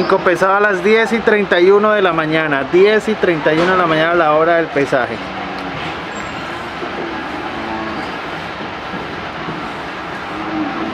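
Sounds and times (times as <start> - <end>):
livestock yard rumble: 3.2 - 10.9.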